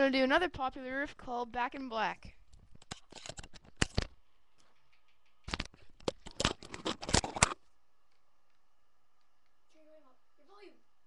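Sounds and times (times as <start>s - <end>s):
handling clicks and rustles: 2.6s - 8.2s.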